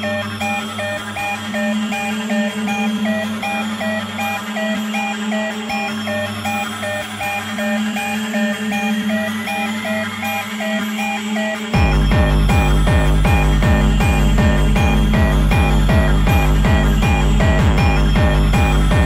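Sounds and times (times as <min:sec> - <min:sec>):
fast repeating synth riff: 0:00.0 - 0:19.0
steady low drone: 0:11.7 - 0:19.0
rising synth sweep: 0:11.8 - 0:19.0.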